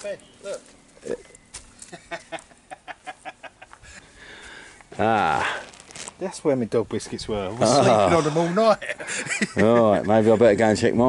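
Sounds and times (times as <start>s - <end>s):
man laughing: 1.9s - 3.8s, 7.6s - 10.6s.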